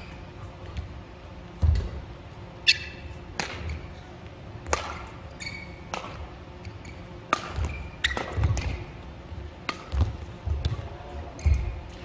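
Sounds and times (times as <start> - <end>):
shoe squeaks: 2.6 - 4.2, 5.3 - 5.9, 6.5 - 8.8, 11.3 - 12.0
racket hitting shuttlecock: 2.7 - 3.9, 4.6 - 6.3, 7.2 - 9.0, 9.6 - 12.0.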